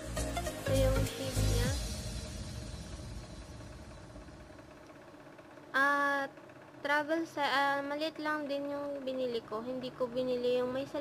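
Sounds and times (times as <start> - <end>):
faint background music: 0.0 - 4.8, 5.7 - 11.0.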